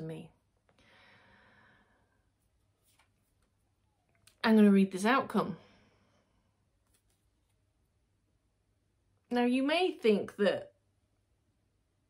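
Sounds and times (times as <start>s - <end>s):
soft breath out: 0.8s - 2.3s.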